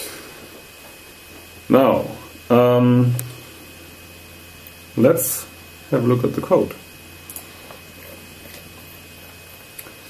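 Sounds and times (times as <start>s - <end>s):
faint high hum: 0.0s - 10.0s
man speaking: 1.7s - 3.3s, 5.0s - 6.8s.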